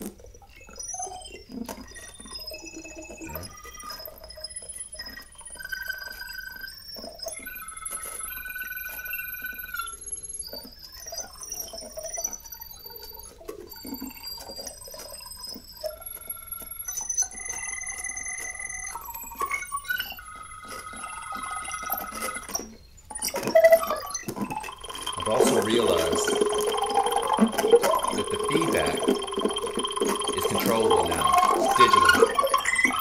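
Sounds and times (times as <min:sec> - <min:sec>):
high held synthesizer beeps: 0:02.0 - 0:04.0, 0:16.1 - 0:33.0.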